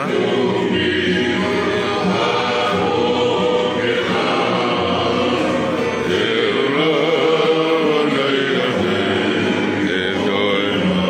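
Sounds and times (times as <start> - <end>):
acoustic guitar: 0.0 - 11.0
men singing in harmony: 0.0 - 11.0.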